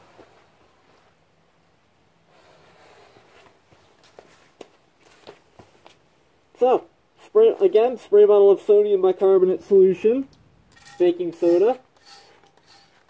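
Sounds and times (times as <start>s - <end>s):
soft rustle: 0.0s - 1.4s, 2.2s - 6.1s.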